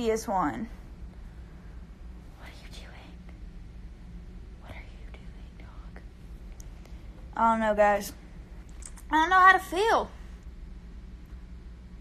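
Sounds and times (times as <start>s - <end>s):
faint low hum: 0.0s - 12.0s
person whispering: 2.3s - 3.4s, 4.6s - 6.2s.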